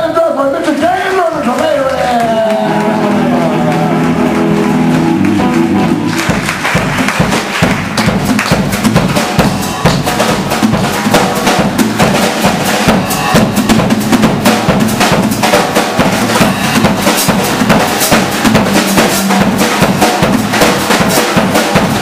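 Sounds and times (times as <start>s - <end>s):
live blues band: 1.9s - 22.0s
drum kit beat: 2.0s - 22.0s.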